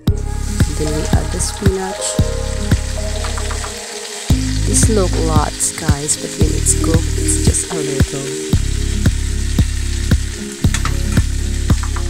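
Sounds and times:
background music with steady beat: 0.0s - 12.0s
greens sizzling in hot oil: 0.2s - 12.0s.

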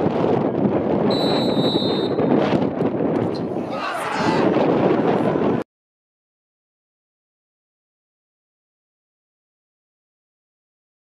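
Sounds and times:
wind noise on microphone: 0.0s - 5.7s
referee's whistle blast: 1.1s - 2.2s.

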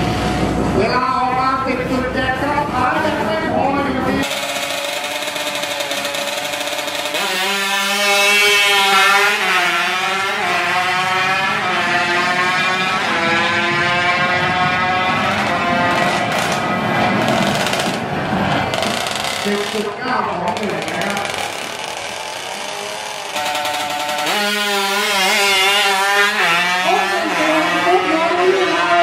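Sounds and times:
motorcycle engine accelerating: 4.2s - 29.0s.

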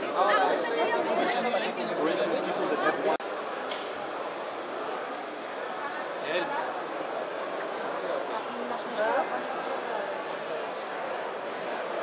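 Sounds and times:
people talking over each other: 0.0s - 3.2s.

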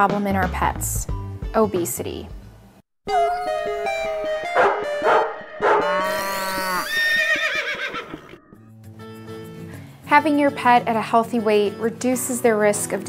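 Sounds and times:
short musical jingle: 3.1s - 6.8s
wavering animal call: 3.1s - 8.6s
dog barking: 4.6s - 6.0s.

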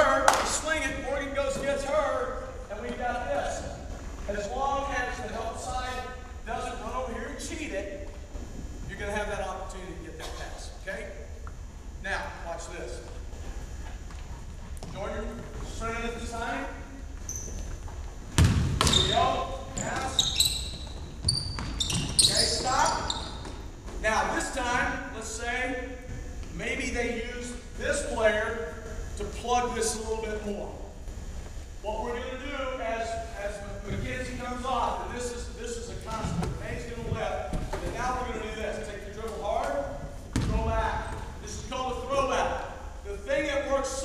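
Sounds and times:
man talking in echoing gym: 0.0s - 13.9s, 14.8s - 17.5s, 18.4s - 21.2s, 21.8s - 44.0s
sneakers squeaking: 13.0s - 32.4s, 33.0s - 42.0s
basketball bouncing on hardwood: 18.3s - 19.2s, 40.3s - 41.2s.

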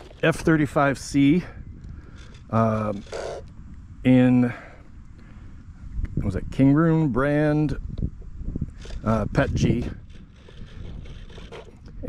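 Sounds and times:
wind on microphone: 0.0s - 4.0s, 5.0s - 12.0s.

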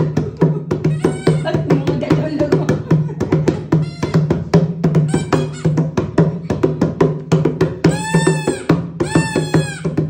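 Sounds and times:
steady drum beat: 0.0s - 10.0s
toy horn blasts: 5.1s - 5.8s, 7.9s - 10.0s.

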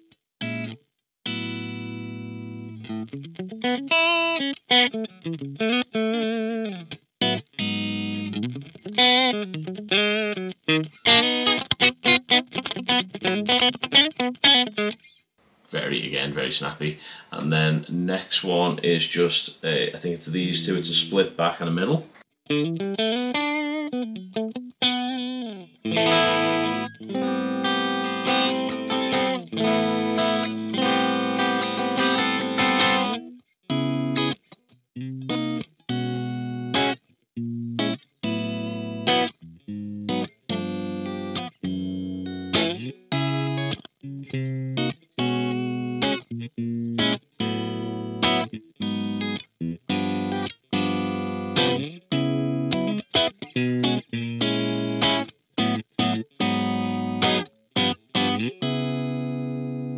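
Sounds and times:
clean electric guitar: 0.0s - 59.9s.

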